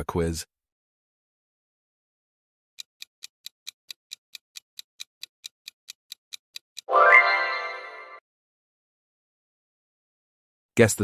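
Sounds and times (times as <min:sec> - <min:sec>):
clock ticking: 0:02.8 - 0:06.9
bright pitched chime: 0:06.9 - 0:08.2.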